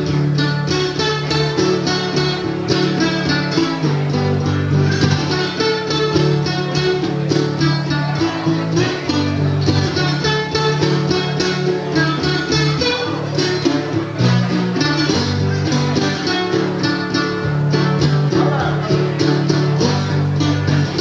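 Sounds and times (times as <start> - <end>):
acoustic guitar fingerpicked blues: 0.0 - 21.0.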